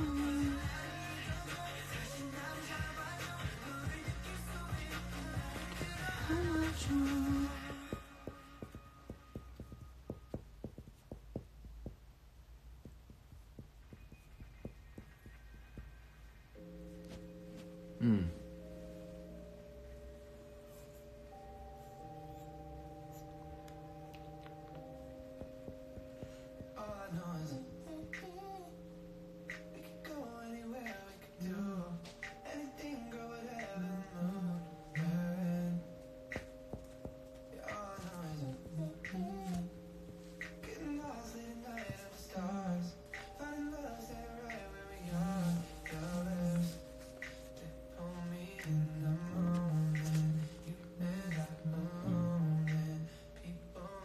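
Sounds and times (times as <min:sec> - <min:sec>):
soft background music: 0:00.0 - 0:54.0
low steady hum: 0:03.9 - 0:54.0
man humming a melody: 0:17.9 - 0:18.7, 0:51.1 - 0:54.0.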